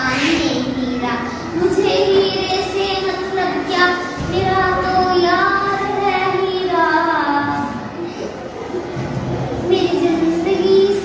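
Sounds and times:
girl singing: 0.0 - 8.0, 9.7 - 11.0.

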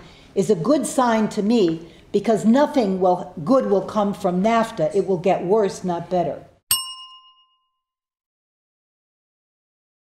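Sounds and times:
bell-like chime ringing: 6.7 - 8.0.

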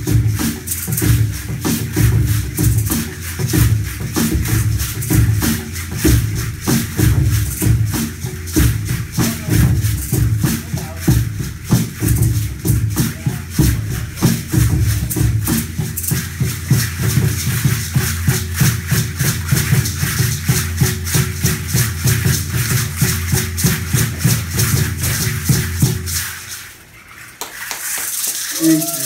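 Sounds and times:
wooden hand drum beating: 0.0 - 26.2
hand rattle shaking: 0.0 - 29.0.

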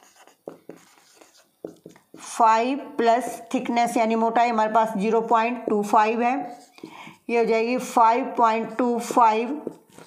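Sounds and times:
marker squeaking on whiteboard: 0.0 - 2.3, 6.4 - 7.0.

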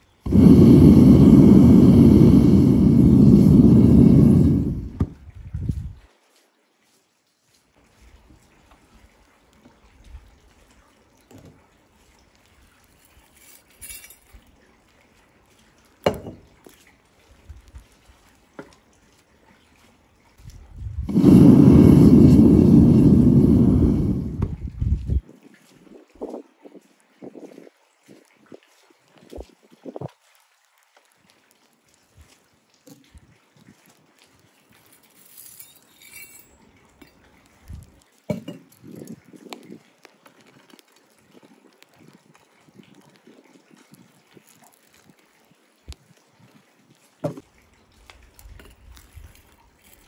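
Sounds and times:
furnace burner rushing: 0.2 - 5.2, 21.0 - 24.8.

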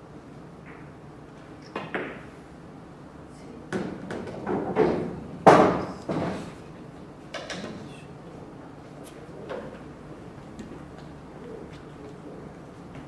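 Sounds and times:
cue striking ball: 1.7 - 2.3
pool balls clicking: 7.3 - 7.8.

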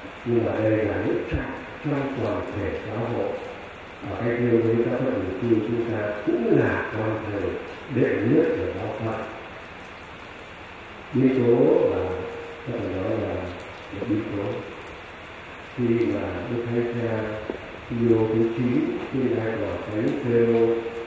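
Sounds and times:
steady low hiss: 0.0 - 21.0
man speaking over loudspeakers: 0.2 - 9.4, 11.2 - 14.8, 15.8 - 21.0.

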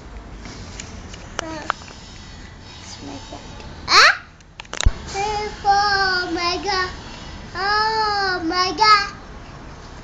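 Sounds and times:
boy singing unaccompanied: 5.0 - 9.2.

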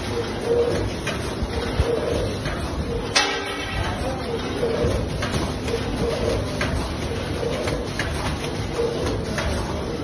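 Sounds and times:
packing machine running: 0.0 - 10.0.

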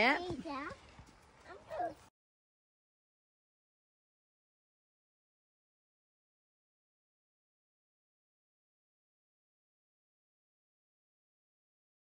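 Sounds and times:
woman speaking: 0.0 - 0.4.

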